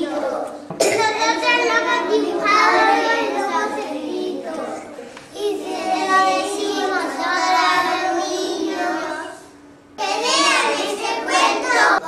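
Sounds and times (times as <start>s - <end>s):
young children singing: 0.0s - 12.0s.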